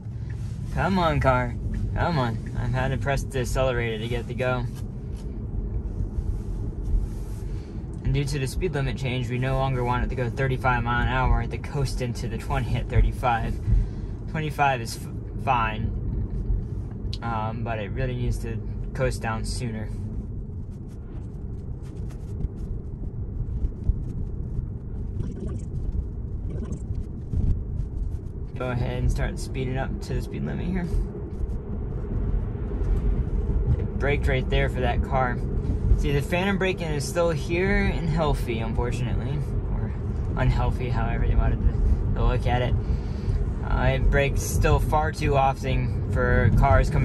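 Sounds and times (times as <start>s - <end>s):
road and tyre rumble: 0.0s - 47.0s.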